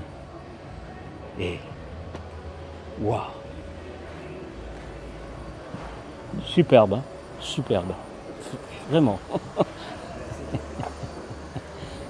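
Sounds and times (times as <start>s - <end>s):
low hall background hum: 0.0s - 12.0s.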